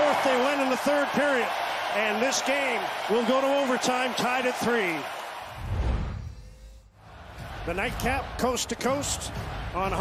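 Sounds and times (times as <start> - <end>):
arena crowd noise: 0.0 - 5.7, 7.0 - 10.0.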